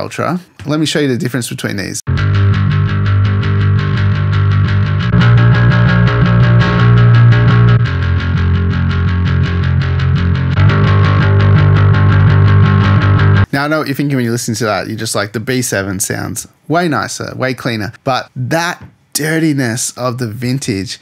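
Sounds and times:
distorted electric bass guitar: 2.1 - 13.5.

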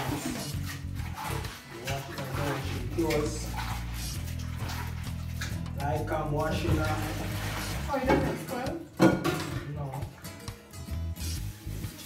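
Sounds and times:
background music: 0.0 - 12.0
water running from a tap: 0.0 - 12.0.

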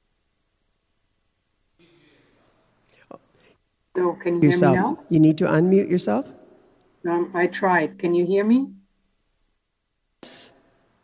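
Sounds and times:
muffled speech over video call: 3.9 - 6.4.

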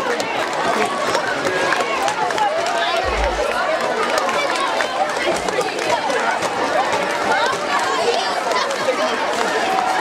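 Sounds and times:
children talking and calling out: 0.0 - 10.0.

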